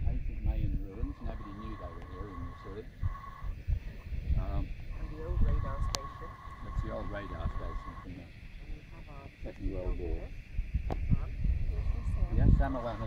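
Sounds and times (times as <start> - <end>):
indistinct voices talking: 0.0 - 13.0
wind rumbling on microphone: 0.0 - 13.0.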